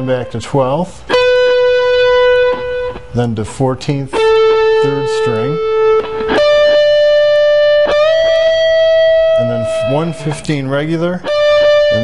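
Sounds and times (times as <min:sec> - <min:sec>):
electric guitar single note: 0:04.1 - 0:10.5, 0:11.2 - 0:12.0.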